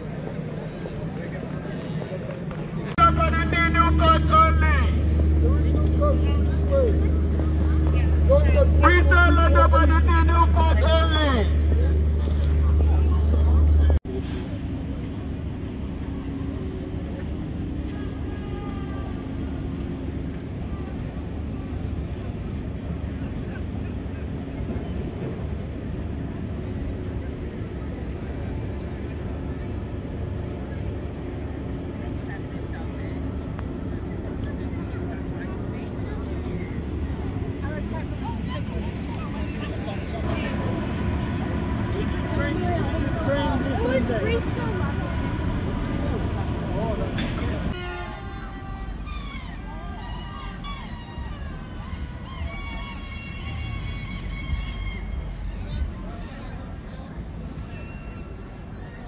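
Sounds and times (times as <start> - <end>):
crowd chatter: 0.0 - 59.0
loud low outdoor rumble: 0.0 - 59.0
train rumbling over viaduct: 0.0 - 59.0.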